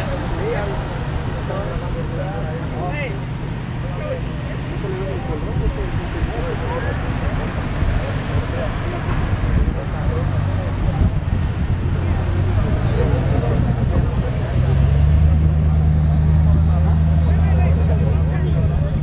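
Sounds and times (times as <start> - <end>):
vehicle engine running: 0.0 - 19.0
voices talking: 0.0 - 19.0.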